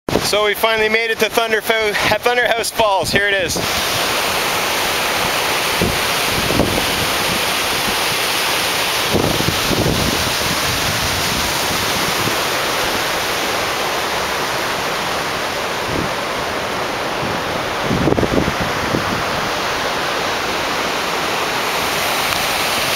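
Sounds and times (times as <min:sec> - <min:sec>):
whitewater rushing: 0:00.1 - 0:22.9
wind buffeting microphone: 0:05.2 - 0:08.2, 0:09.0 - 0:13.1, 0:15.7 - 0:19.9.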